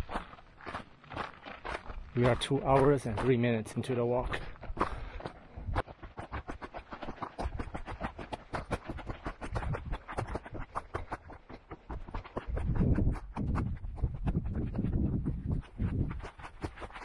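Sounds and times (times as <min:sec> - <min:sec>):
footsteps on rocky dirt trail: 0:00.0 - 0:17.0.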